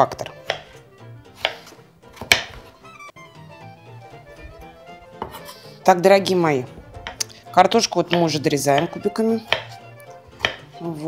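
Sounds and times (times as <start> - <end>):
knife chopping on wooden board: 0.2 - 2.8, 4.4 - 5.5, 6.9 - 7.4, 8.0 - 10.8.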